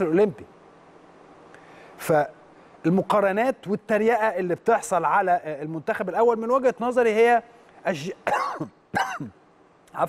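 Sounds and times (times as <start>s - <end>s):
man clearing his throat: 8.3s - 9.4s.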